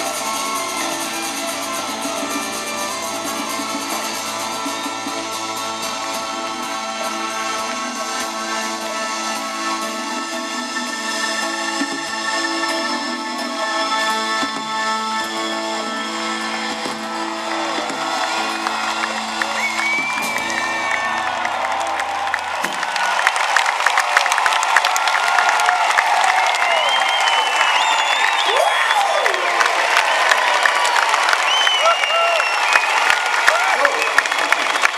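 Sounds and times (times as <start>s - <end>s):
audience applause and cheering: 0.0s - 34.9s.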